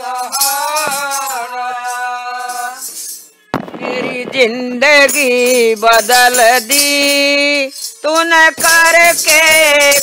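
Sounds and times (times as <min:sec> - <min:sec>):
burst of percussion: 0:02.5 - 0:07.2.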